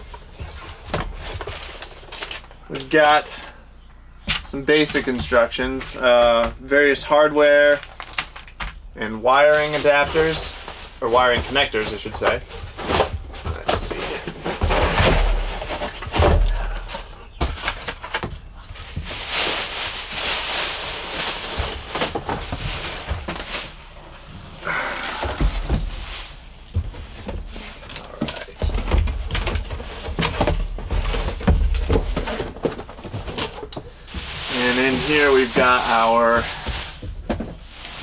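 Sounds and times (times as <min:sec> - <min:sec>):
plastic bag crinkling: 0:07.6 - 0:08.6, 0:15.2 - 0:38.0
cardboard box rustling: 0:09.5 - 0:38.0.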